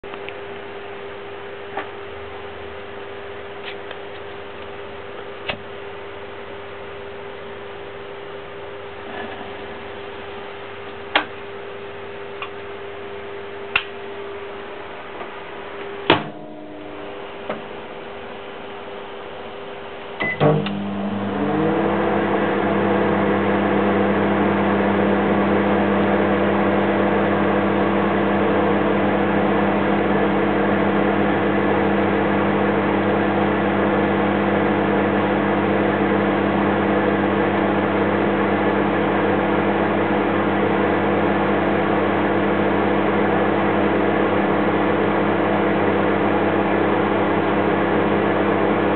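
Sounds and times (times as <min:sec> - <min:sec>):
microwave oven humming: 0:00.0 - 0:48.9.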